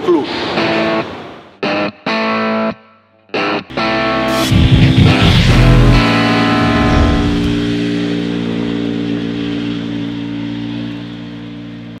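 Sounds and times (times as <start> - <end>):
distorted electric guitar chord: 3.4 - 10.2.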